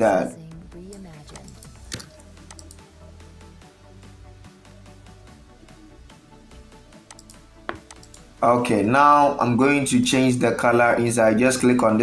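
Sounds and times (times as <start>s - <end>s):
quiet background music: 0.0s - 12.0s
computer keyboard and mouse clicks: 0.9s - 2.8s, 7.0s - 8.3s.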